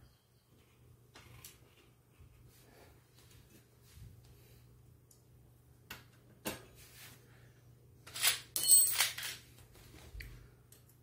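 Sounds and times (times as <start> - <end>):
metal parts clinking and scraping: 8.0 - 9.5.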